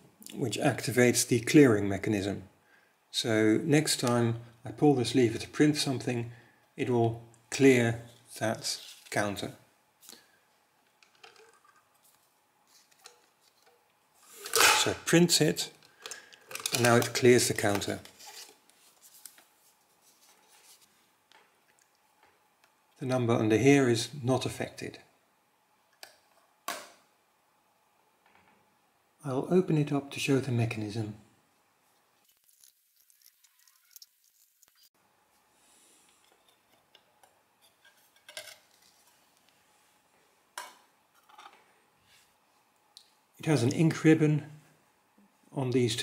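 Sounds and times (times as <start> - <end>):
faint metal clinks and scrapes: 32.3 - 34.9.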